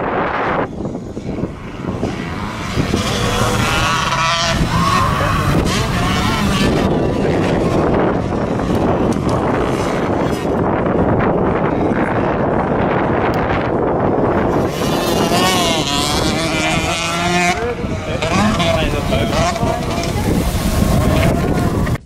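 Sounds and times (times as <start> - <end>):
motocross bike engines revving: 0.0 - 22.0
wind buffeting microphone: 0.0 - 22.0.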